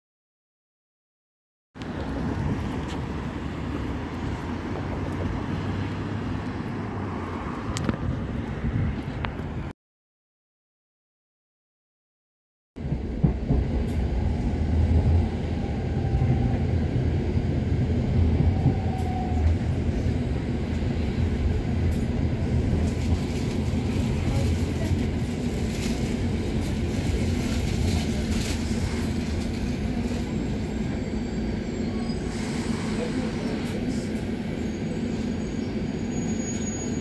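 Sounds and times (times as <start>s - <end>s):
train wheels rumbling: 12.8s - 37.0s.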